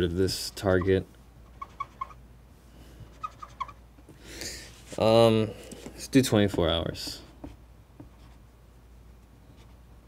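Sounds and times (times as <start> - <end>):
marker squeaking on whiteboard: 1.5 - 2.2, 3.1 - 3.8.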